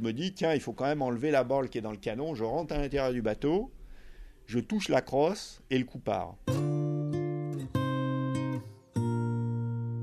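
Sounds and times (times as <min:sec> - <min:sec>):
strummed guitar chords: 0:06.5 - 0:10.0.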